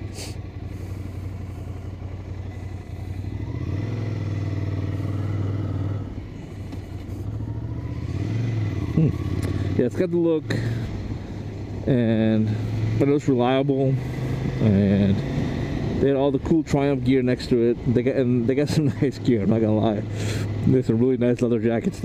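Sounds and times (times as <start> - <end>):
motorcycle engine running: 0.0 - 22.0.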